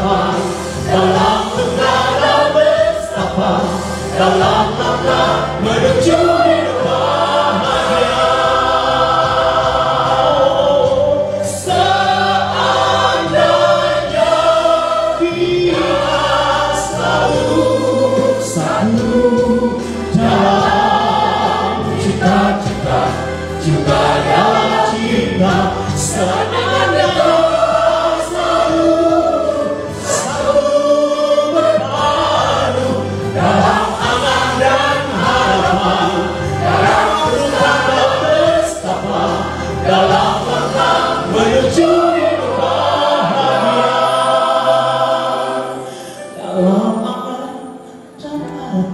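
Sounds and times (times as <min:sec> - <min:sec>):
congregation singing: 0:00.0 - 0:48.9
musical accompaniment: 0:00.0 - 0:48.9.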